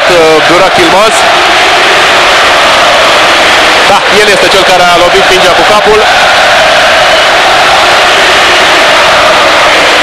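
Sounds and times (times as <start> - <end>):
man commentating: 0.0 - 1.3, 3.8 - 6.2
stadium crowd noise: 0.0 - 10.0.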